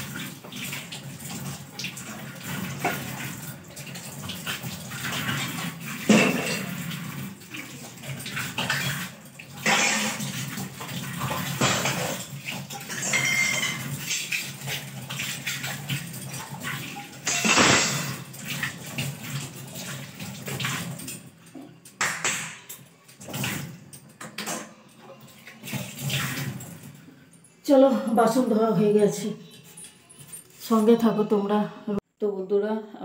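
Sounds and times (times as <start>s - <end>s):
tap water running into sink: 0.0s - 27.1s
metal dishes clinking: 6.0s - 6.9s, 11.4s - 14.3s, 16.0s - 18.4s.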